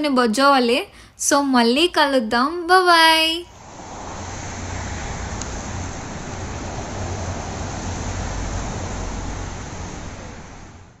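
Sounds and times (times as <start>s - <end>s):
traffic hum: 3.0s - 11.0s
deep rumble: 3.5s - 10.8s
wind buffeting microphone: 3.5s - 10.9s.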